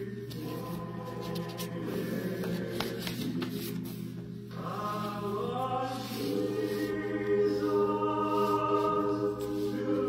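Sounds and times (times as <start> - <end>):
faint choral music: 0.0 - 10.0
paper rustling: 0.3 - 4.1.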